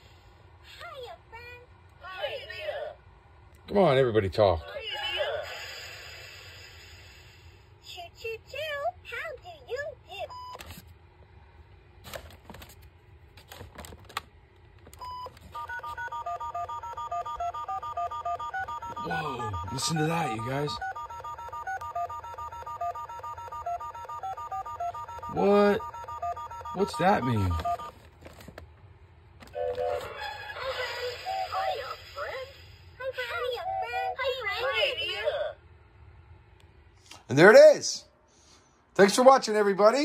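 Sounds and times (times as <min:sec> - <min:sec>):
toy electronic beeps: 0:15.0 - 0:27.9.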